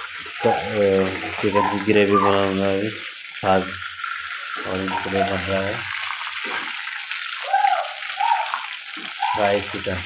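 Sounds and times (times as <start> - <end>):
chicken sizzling in hot oil: 0.0 - 10.0.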